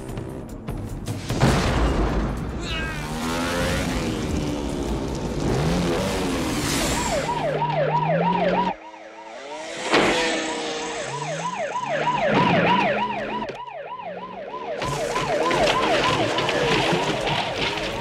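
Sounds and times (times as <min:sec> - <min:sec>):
motorcycle engine revving: 0:02.9 - 0:16.9
police siren yelping: 0:06.3 - 0:18.0.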